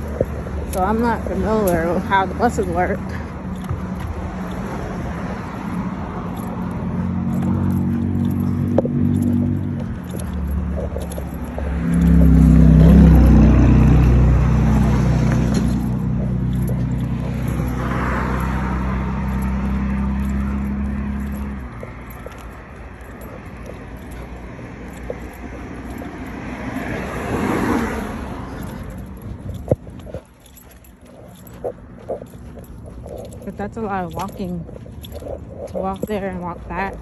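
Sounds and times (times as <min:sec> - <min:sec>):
car passing by: 0:02.4 - 0:30.1
vehicle driving past: 0:03.4 - 0:36.1.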